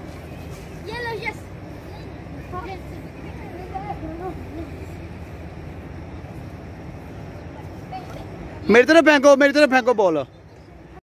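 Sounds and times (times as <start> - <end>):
low outdoor rumble: 0.0 - 11.0
children's voices calling out: 0.3 - 8.8.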